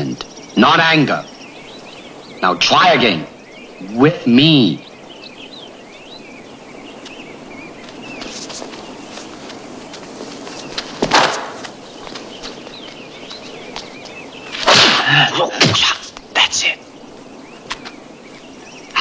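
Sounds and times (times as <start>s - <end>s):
whip-like whoosh: 14.5s - 15.1s.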